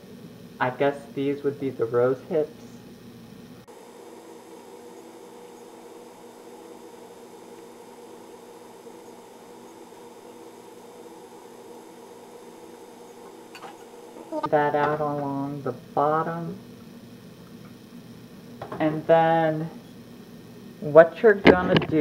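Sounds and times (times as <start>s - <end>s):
steady electrical hum: 0.0s - 22.0s.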